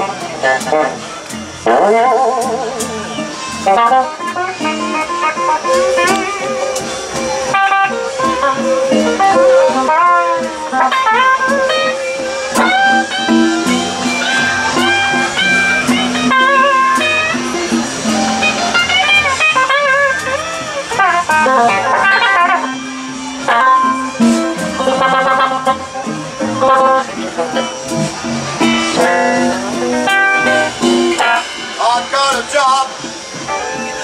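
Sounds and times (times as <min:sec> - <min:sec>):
bass guitar: 0:00.0 - 0:34.0
drums: 0:00.0 - 0:34.0
electric guitar lead lines: 0:00.0 - 0:34.0.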